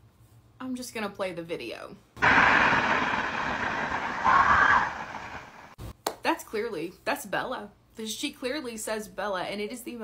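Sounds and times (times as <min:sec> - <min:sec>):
steady hiss: 0:02.2 - 0:05.8
faint woman screaming: 0:04.2 - 0:05.1.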